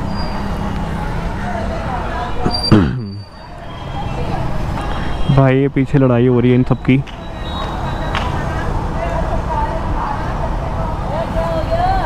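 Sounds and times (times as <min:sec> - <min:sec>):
indistinct voices: 0:00.0 - 0:12.0
street traffic noise: 0:00.0 - 0:12.0.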